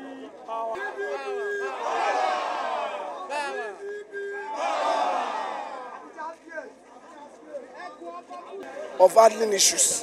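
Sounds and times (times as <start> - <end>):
crowd of men shouting: 0.7 - 6.2.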